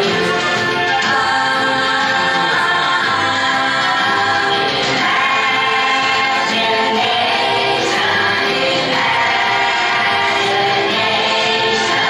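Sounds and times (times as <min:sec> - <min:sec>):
choir singing over loudspeakers: 0:00.0 - 0:12.0.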